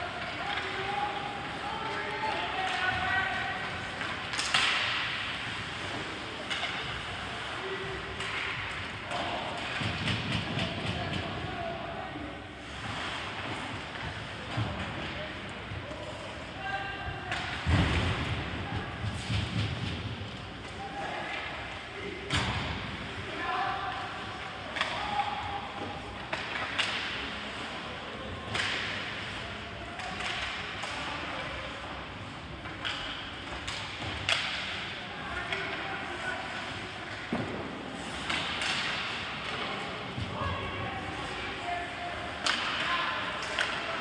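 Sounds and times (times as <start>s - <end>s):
hockey sticks clicking on puck: 0.0s - 11.5s, 17.3s - 18.3s, 19.1s - 40.4s, 41.0s - 44.0s
skates and sticks on ice: 0.0s - 11.6s, 17.3s - 21.5s.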